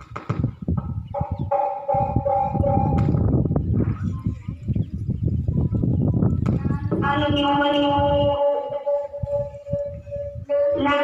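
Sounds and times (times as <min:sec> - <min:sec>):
siren-like held tone: 0:01.2 - 0:03.2, 0:07.7 - 0:11.0.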